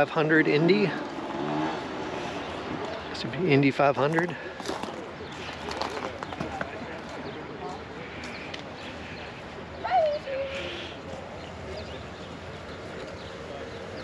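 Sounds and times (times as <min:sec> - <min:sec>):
distant people talking: 0:00.0 - 0:14.0.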